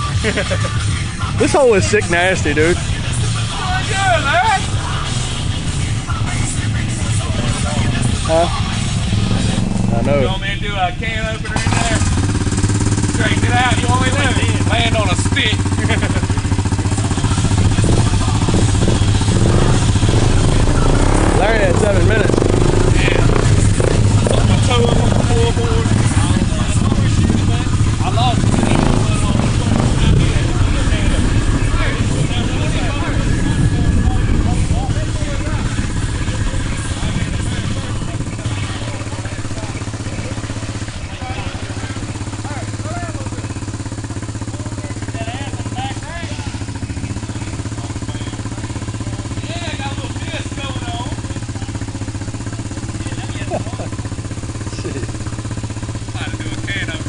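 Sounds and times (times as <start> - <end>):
quad bike engine running: 0.0 - 57.0.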